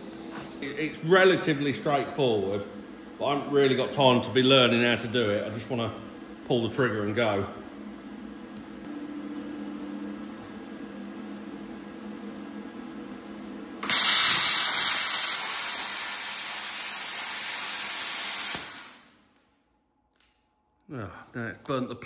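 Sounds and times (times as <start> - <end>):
steady low hum: 0.0 - 22.0
plasma cutter hissing: 13.8 - 19.1.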